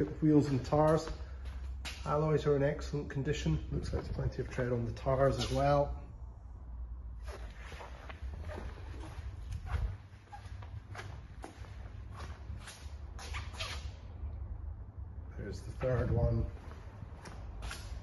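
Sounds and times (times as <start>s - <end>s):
footsteps on tiled floor: 7.5s - 13.3s.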